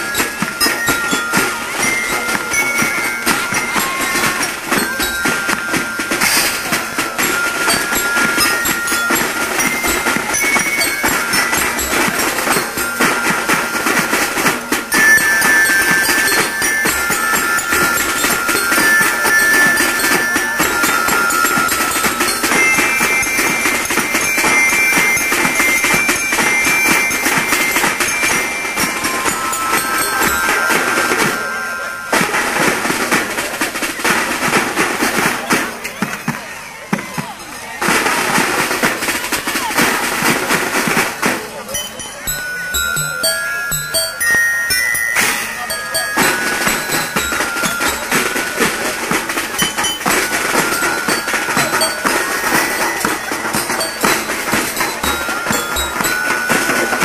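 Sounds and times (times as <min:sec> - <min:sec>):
bell lyre tune: 0:00.0 - 0:57.0
marching drums: 0:00.0 - 0:57.0.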